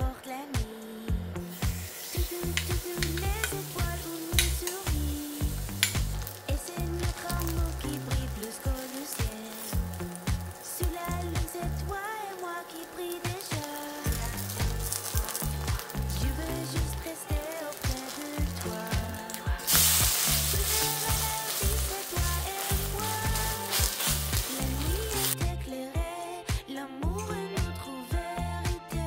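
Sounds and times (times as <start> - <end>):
pancake sizzling in a pan: 1.4 - 25.4.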